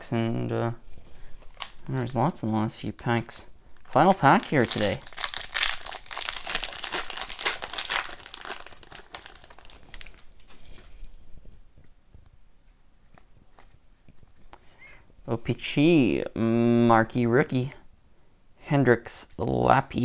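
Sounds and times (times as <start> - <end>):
foil wrapper tearing and crinkling: 1.4 - 2.2, 3.8 - 10.5.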